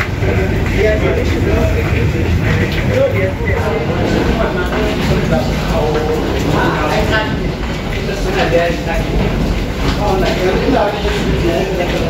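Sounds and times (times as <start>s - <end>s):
passengers chattering: 0.0s - 12.0s
steady low rumble: 0.0s - 12.0s.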